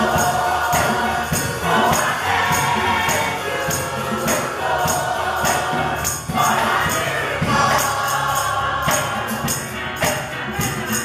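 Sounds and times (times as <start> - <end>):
gospel choir singing: 0.0 - 11.0
keyboard: 0.0 - 11.0
percussion steady beat: 0.0 - 11.0.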